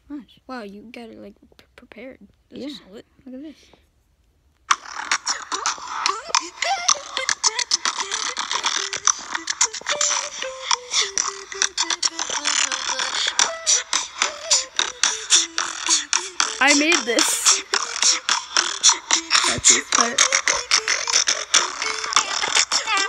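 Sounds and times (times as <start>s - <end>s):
electronic track on phone speaker: 4.7s - 23.0s.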